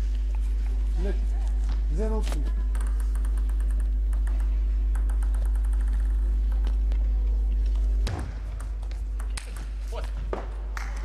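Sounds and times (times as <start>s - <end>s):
low electrical hum: 0.0s - 11.0s
table tennis ball bouncing: 2.7s - 6.8s, 8.1s - 11.0s.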